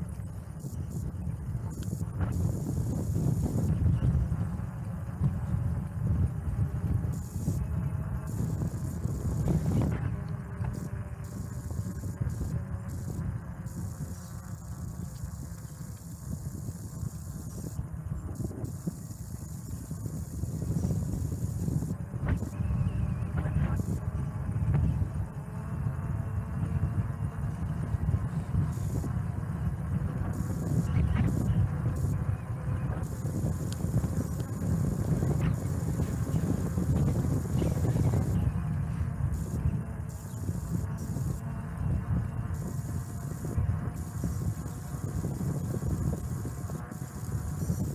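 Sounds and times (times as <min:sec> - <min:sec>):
wind buffeting microphone: 0:00.0 - 0:47.9.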